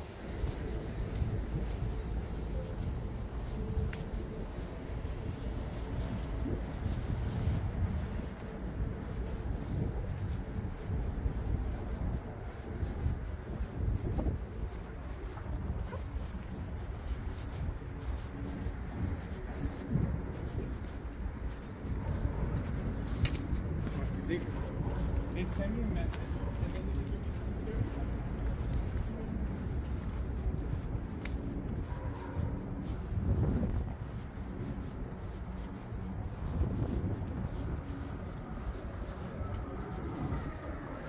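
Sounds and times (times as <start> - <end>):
city background rumble: 0.0 - 41.0.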